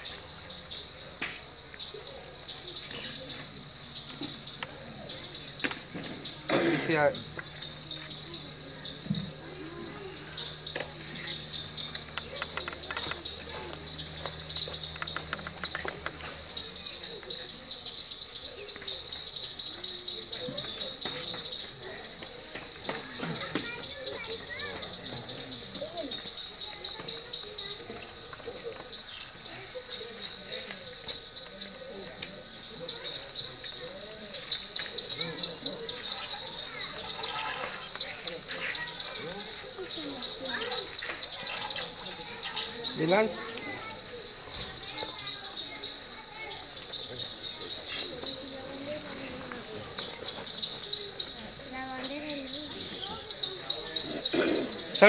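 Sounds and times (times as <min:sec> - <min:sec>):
crickets chirping: 0:00.0 - 0:55.0
murmured voices: 0:00.0 - 0:55.0
sharp clicks: 0:12.0 - 0:13.3, 0:14.2 - 0:16.3.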